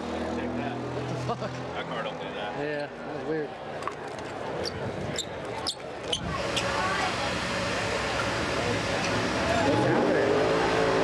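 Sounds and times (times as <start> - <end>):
race car engine: 6.0 - 11.0.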